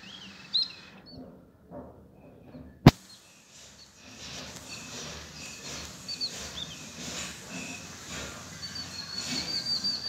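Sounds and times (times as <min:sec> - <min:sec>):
small birds chirping: 0:00.0 - 0:01.2, 0:02.6 - 0:10.0
faint outdoor background: 0:00.0 - 0:10.0.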